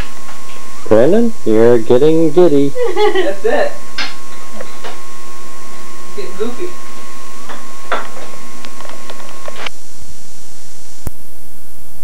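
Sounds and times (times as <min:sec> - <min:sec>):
high tape whine: 0:00.0 - 0:12.0
low buzzing hum: 0:00.0 - 0:12.0
room noise: 0:00.0 - 0:12.0.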